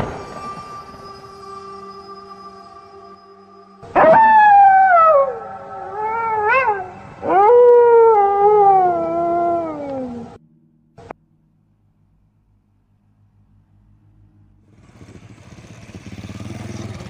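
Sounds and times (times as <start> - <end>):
faint music drone: 0.0 - 17.0
wailing animal cries: 3.9 - 10.4.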